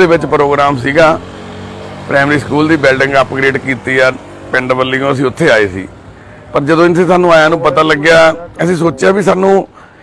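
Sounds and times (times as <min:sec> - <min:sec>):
vehicle engine hum: 0:00.0 - 0:10.0
man talking: 0:02.1 - 0:09.8.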